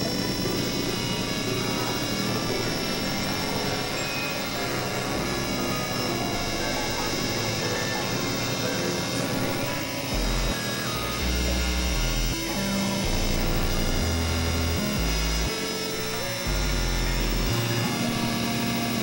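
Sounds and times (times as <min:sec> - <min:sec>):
blocky low synth bass notes: 0:00.0 - 0:18.4
held synthesizer drone tones: 0:00.0 - 0:19.0.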